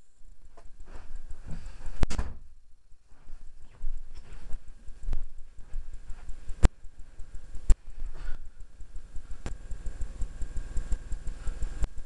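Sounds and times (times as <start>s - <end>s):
low rumble: 0.0s - 12.0s.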